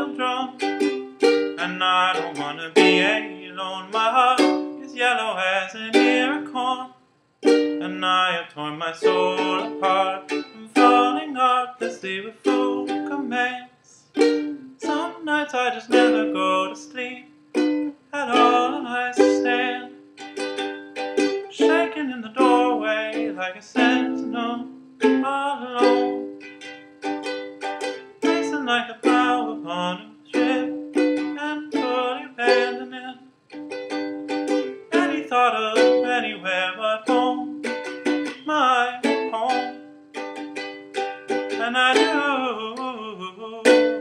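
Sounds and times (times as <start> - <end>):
ukulele playing: 0.0 - 6.8, 7.4 - 8.1, 9.0 - 13.6, 14.2 - 44.0.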